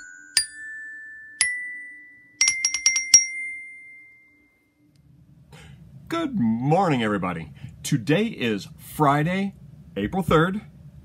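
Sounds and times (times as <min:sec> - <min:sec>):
glockenspiel notes: 0:00.0 - 0:04.8.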